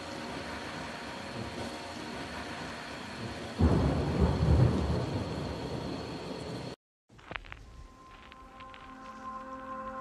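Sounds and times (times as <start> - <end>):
ambient electronic music: 0.0 - 6.8, 7.4 - 10.0
rain hiss: 0.0 - 6.8
thunder rumble: 3.2 - 6.8.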